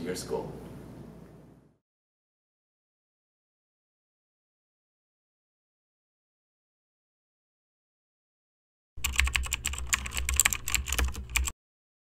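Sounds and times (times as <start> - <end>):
rapid sharp clicks: 9.0 - 11.5.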